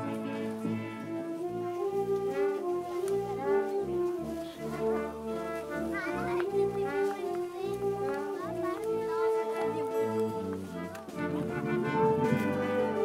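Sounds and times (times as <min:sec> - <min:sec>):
wind band playing: 0:00.0 - 0:13.0.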